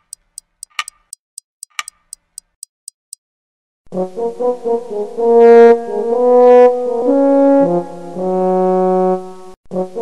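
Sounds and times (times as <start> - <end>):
clock ticking: 0.0 - 3.2.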